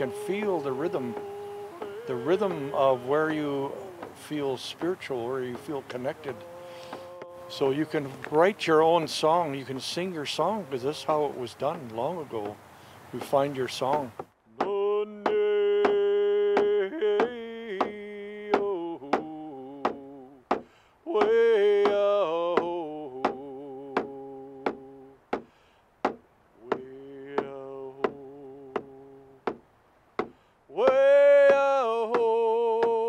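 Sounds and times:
man singing chant-like song: 0.0 - 25.2, 26.6 - 29.6, 30.7 - 33.0
hand drum beats: 30.2 - 33.0.

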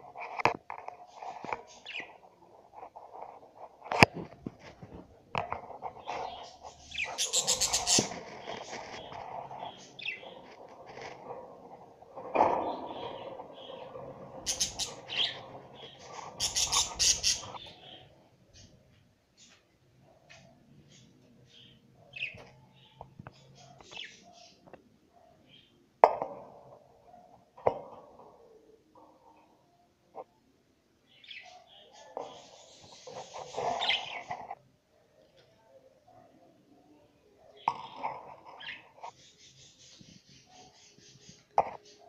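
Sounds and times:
budgerigars chirping and chattering: 5.8 - 11.2, 12.6 - 18.7, 31.2 - 34.5.

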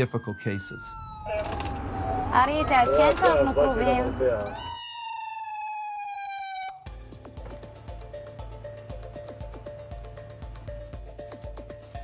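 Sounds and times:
ambulance siren wailing: 0.0 - 7.0.

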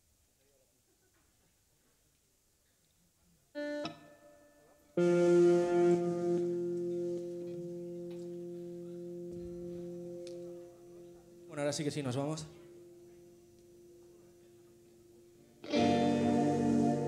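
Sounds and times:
electric guitar notes: 3.6 - 17.0.

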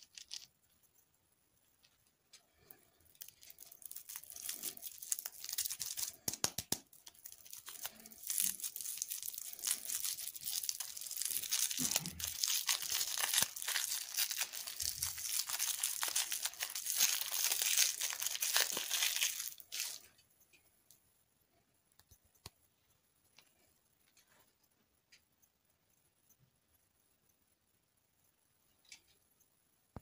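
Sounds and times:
plastic candy wrapper crinkling: 0.0 - 0.5, 2.6 - 20.1.

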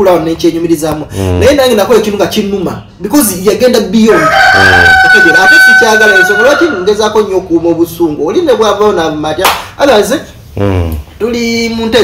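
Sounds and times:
man's voice faint: 1.1 - 1.6, 10.6 - 11.1.

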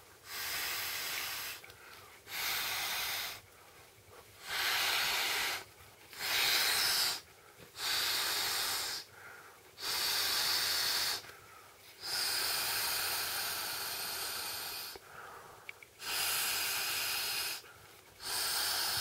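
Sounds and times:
breath blown into air mat valve: 0.0 - 1.7, 2.3 - 3.4, 4.4 - 9.1, 9.8 - 11.3, 12.0 - 15.0, 16.0 - 19.0.

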